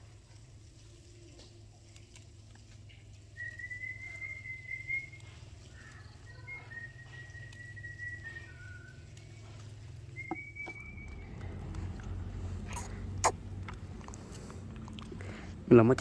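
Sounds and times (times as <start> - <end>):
person whistling long notes: 3.4 - 5.3, 6.4 - 9.0, 10.1 - 11.4.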